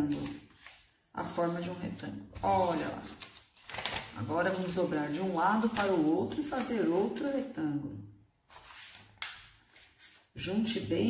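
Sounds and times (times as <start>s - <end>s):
paper rustling: 0.0s - 7.4s, 8.5s - 10.4s.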